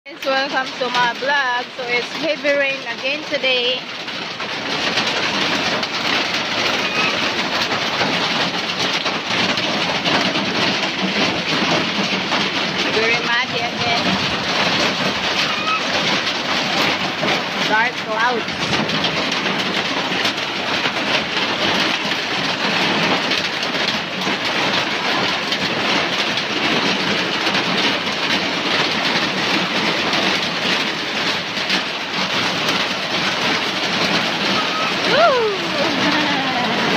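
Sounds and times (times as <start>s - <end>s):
heavy rain pouring: 0.1s - 36.9s.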